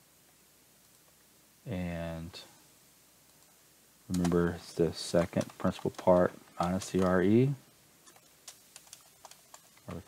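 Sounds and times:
keyboard keys clicking: 4.1 - 4.5, 5.2 - 7.2, 8.0 - 10.0.

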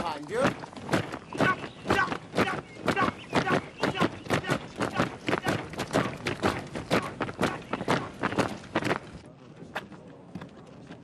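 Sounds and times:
boots marching on gravel: 0.0 - 9.2.

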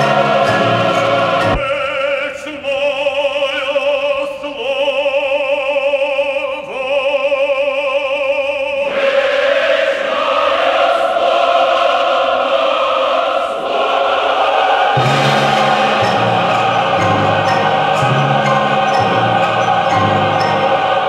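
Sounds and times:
choir singing: 0.0 - 4.4, 8.7 - 21.0.

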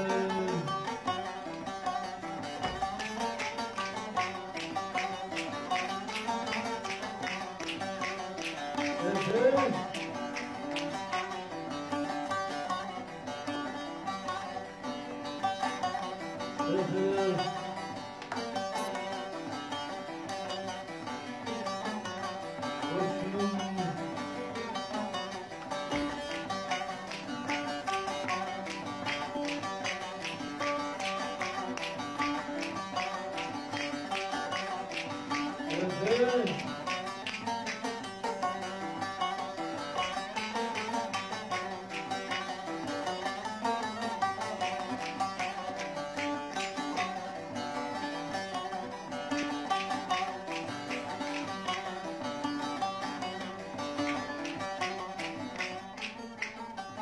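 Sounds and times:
person calling out: 0.0 - 0.8, 9.0 - 9.9, 16.7 - 17.6, 22.9 - 24.1, 35.7 - 36.8
plucked lutes playing folk tune: 0.0 - 57.0.

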